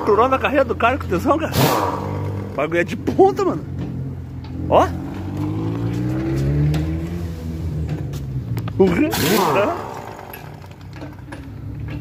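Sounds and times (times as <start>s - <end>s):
pneumatic impact wrench: 1.5s - 2.2s, 9.0s - 11.2s.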